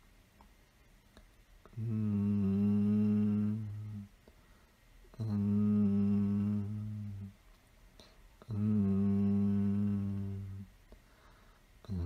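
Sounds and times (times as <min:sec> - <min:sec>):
man humming low note: 0:01.7 - 0:04.1, 0:05.1 - 0:07.4, 0:08.4 - 0:10.7.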